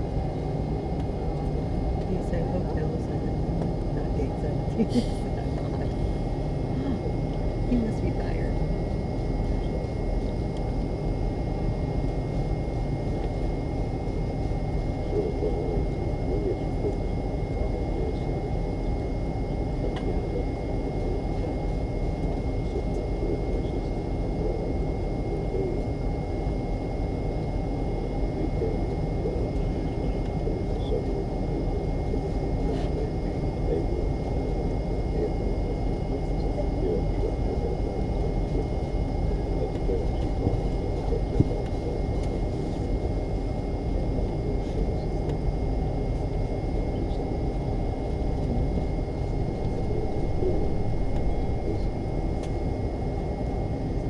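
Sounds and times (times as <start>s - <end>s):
jet engine rumble: 0.0s - 54.0s
thin steady whine: 0.0s - 54.0s.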